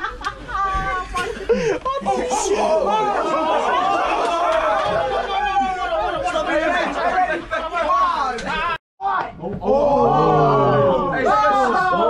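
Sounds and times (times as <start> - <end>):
men chattering: 1.0 - 8.8.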